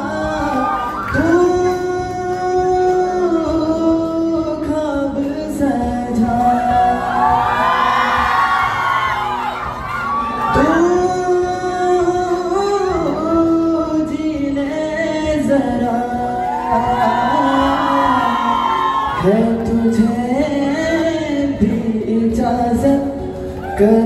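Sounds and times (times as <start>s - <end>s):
man singing into microphone: 0.0s - 8.8s, 10.3s - 24.0s
accompanying music: 0.0s - 24.0s.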